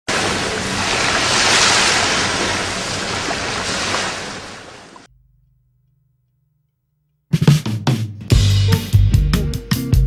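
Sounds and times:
sea waves washing: 0.0s - 5.1s.

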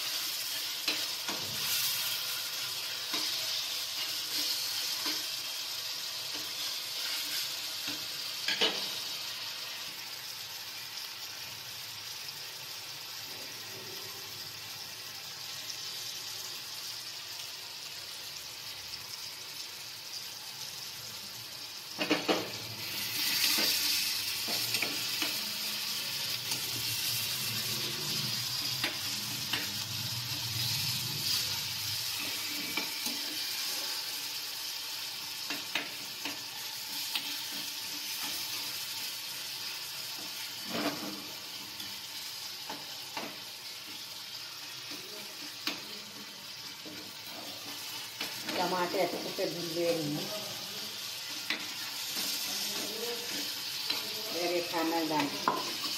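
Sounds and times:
food sizzling in oil: 0.0s - 55.9s.

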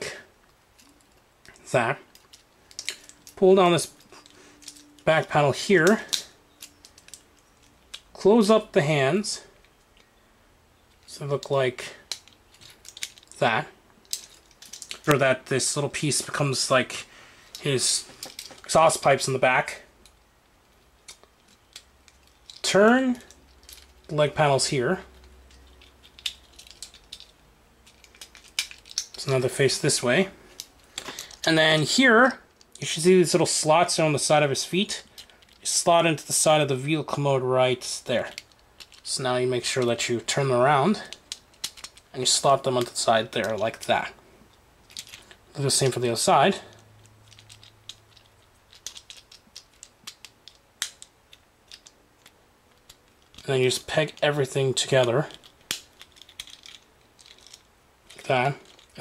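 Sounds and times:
plastic toy parts clicking: 2.1s - 5.0s, 5.8s - 8.1s, 12.1s - 13.4s, 14.0s - 15.2s, 21.0s - 22.7s, 25.2s - 29.2s, 38.2s - 39.1s, 41.1s - 42.1s, 44.9s - 45.3s, 47.2s - 59.0s.

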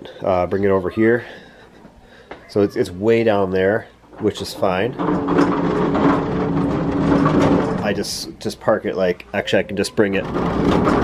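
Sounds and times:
tool cart casters rolling on concrete: 4.2s - 9.0s, 9.9s - 11.0s.

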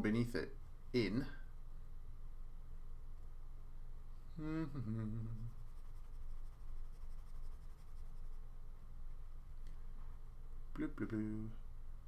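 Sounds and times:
stylus scribbling on tablet screen: 5.4s - 8.4s.

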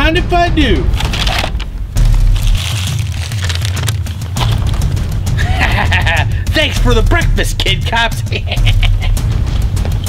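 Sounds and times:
paper bag rustling: 0.9s - 5.0s.

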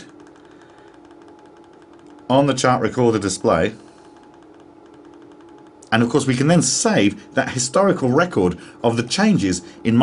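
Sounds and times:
fine rapid ticking: 0.0s - 7.0s
faint background hum: 0.0s - 10.0s.

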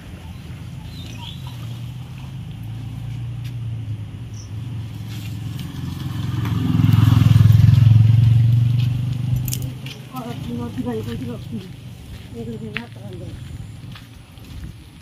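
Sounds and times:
vehicle engine passing: 0.0s - 14.4s.

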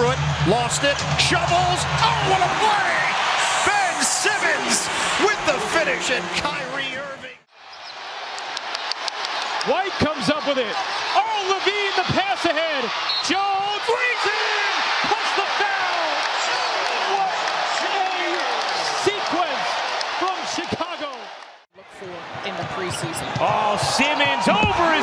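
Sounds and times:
arena crowd noise: 0.0s - 25.0s.

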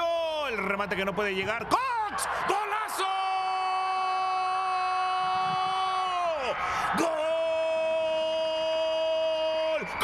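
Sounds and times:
commentator shouting goal: 1.6s - 10.0s
person breathing in: 6.5s - 7.0s.

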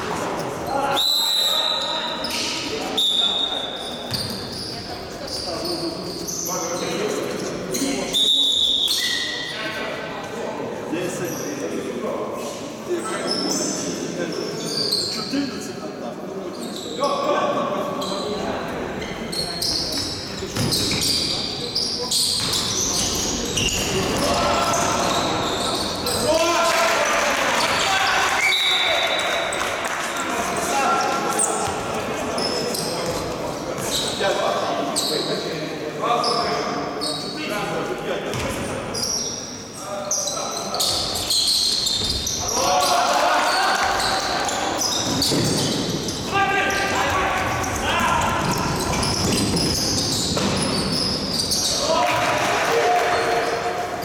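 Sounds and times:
shoes squeaking: 1.7s - 7.0s, 19.0s - 26.4s, 38.3s - 42.9s, 43.5s - 51.9s
basketball bouncing on court: 48.4s - 50.8s.

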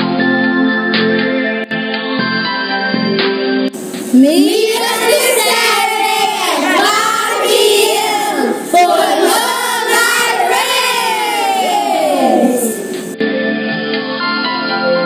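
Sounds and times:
children singing together: 3.8s - 13.2s
soft instrumental music: 12.5s - 15.0s.

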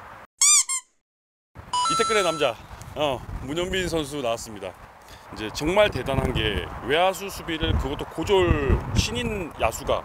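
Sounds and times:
squeaky cartoon chirps: 0.4s - 1.0s, 1.8s - 2.4s.

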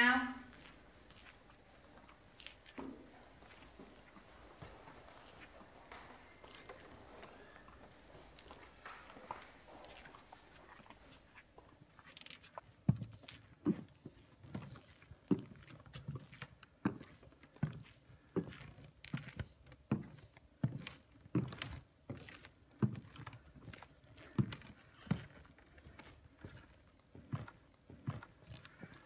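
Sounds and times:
high heels on wooden floor: 0.0s - 29.0s.

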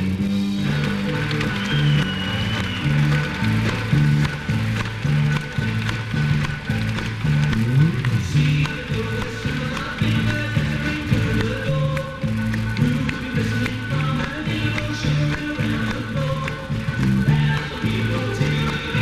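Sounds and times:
bass line of repeated notes: 0.0s - 19.0s
live rock band with banjo: 0.0s - 19.0s.

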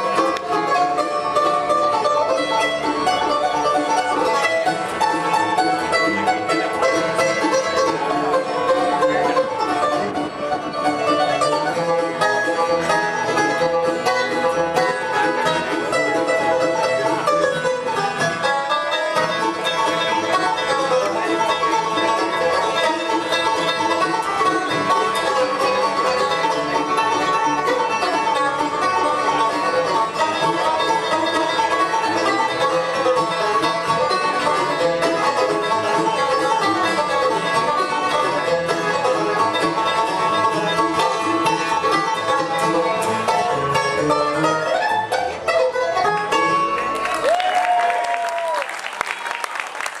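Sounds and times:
acoustic guitar: 0.0s - 47.2s
upright bass: 0.0s - 47.4s
banjo: 0.0s - 50.0s
mandolin: 0.0s - 50.0s.

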